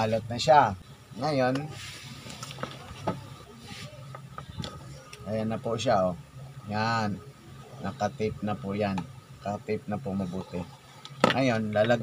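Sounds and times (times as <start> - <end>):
short hiss: 1.7 - 2.5.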